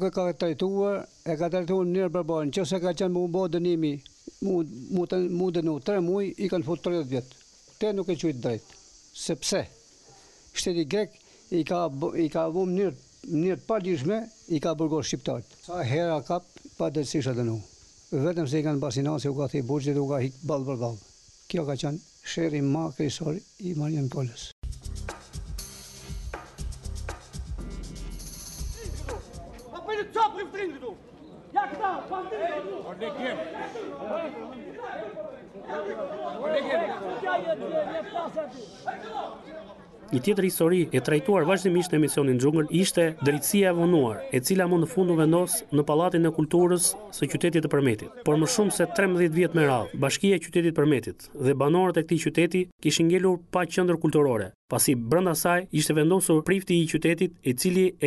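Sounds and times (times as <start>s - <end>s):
faint high-pitched hiss: 0.0s - 24.6s
voices talking and calling out: 28.7s - 50.0s
man speaking: 31.6s - 58.0s.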